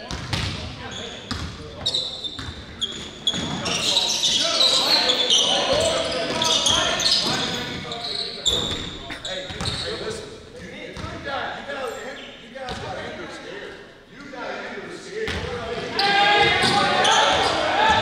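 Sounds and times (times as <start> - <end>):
voices calling out in a gym: 0.0 - 18.0.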